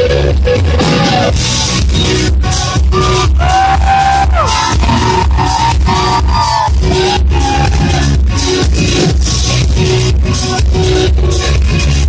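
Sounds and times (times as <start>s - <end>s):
drums with steady beat: 0.0s - 12.0s
heavy booming bass: 0.0s - 12.0s
indie rock band playing: 0.0s - 12.0s.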